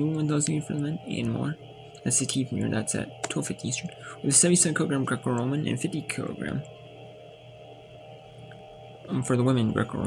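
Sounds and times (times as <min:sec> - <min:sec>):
faint hum of held tones: 0:00.0 - 0:10.0.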